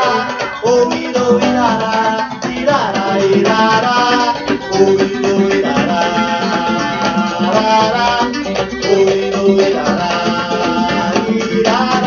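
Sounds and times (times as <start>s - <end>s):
instrumental music from loudspeaker: 0.0s - 12.0s
shaker-like percussion: 0.0s - 12.0s.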